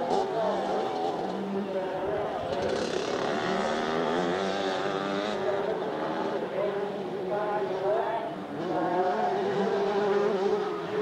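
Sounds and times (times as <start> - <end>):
motocross bike engines revving: 2.5 - 6.8, 7.8 - 11.0.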